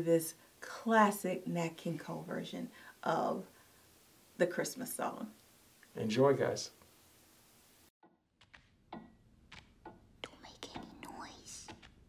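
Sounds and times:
faint whispered voice: 0:10.2 - 0:11.7.

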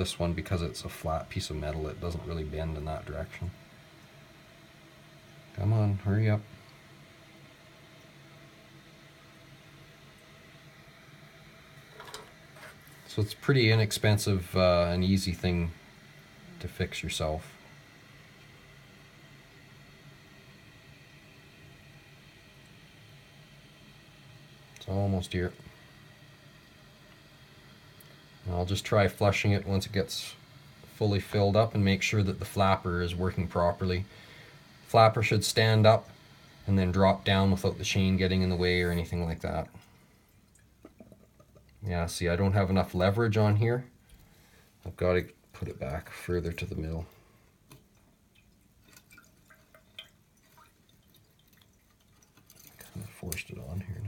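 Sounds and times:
toilet tank refilling hiss: 0:00.0 - 0:52.0
water drips: 0:39.6 - 0:42.0, 0:47.0 - 0:53.6
small clicks in toilet tank: 0:40.5 - 0:41.8, 0:47.6 - 0:53.5.

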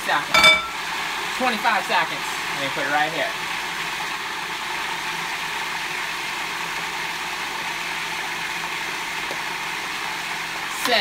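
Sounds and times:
food processor motor running: 0:00.8 - 0:11.0.

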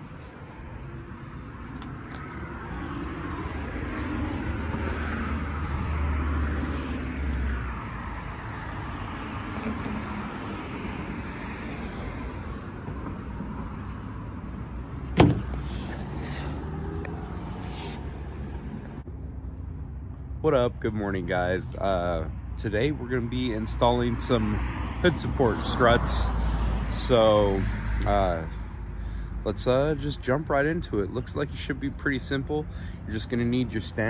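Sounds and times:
vehicle passing: 0:00.0 - 0:21.8
sharp knock: 0:15.2 - 0:15.6.

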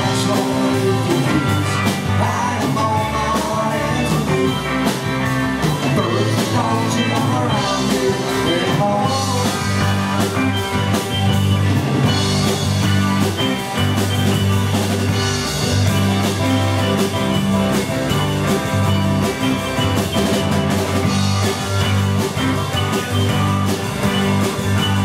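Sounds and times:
bass guitar: 0:00.0 - 0:25.0
drum kit: 0:00.0 - 0:25.0
electric guitars: 0:00.0 - 0:25.0.

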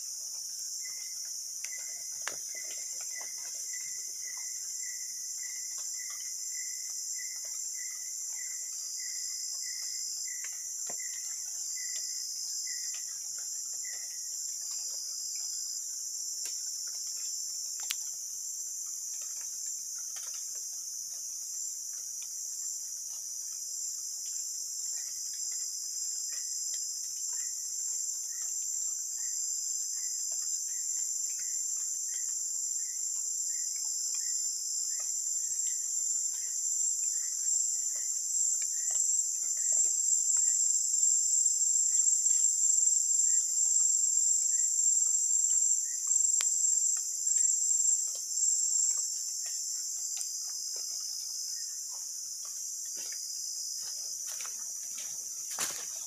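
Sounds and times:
insects droning: 0:00.0 - 0:56.0.

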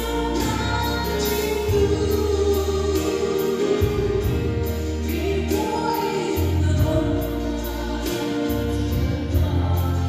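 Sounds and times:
sustained bass notes: 0:00.0 - 0:10.0
woman singing into microphone: 0:00.0 - 0:10.0.

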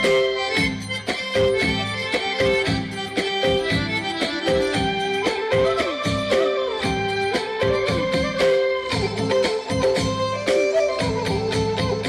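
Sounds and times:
folk music with accordion: 0:00.0 - 0:06.5.

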